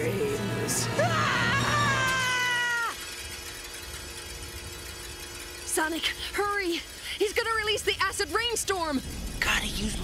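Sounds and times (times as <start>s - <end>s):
cartoon character screaming: 1.0s - 3.0s.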